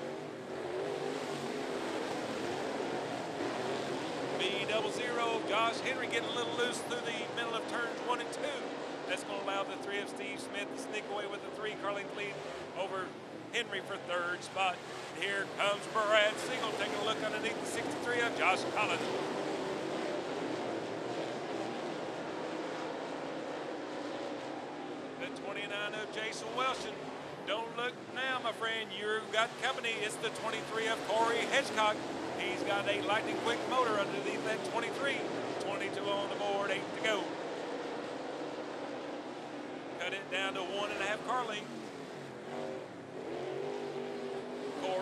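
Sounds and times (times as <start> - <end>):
race car engines roaring: 0.0 - 45.0
announcer speaking: 4.4 - 19.2, 25.2 - 37.3, 40.0 - 41.7.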